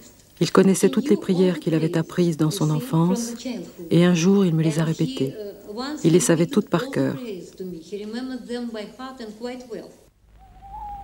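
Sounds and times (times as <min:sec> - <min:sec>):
person speaking: 0:00.0 - 0:07.9
held tone: 0:10.4 - 0:11.0.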